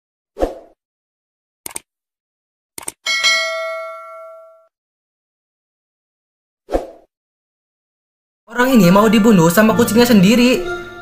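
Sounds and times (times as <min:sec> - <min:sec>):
quick double clicks: 0:01.6 - 0:01.9, 0:02.8 - 0:03.0
bell ding: 0:03.1 - 0:04.7.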